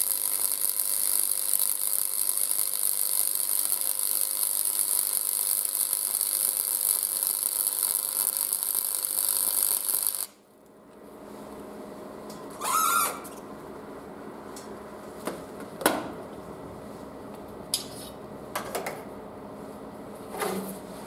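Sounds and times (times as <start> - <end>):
welding arc crackling: 0.0 - 10.4.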